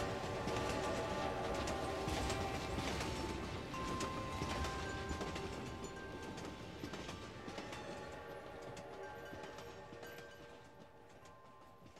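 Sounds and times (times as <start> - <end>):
train wheels clacking over rail joints: 0.0 - 11.9.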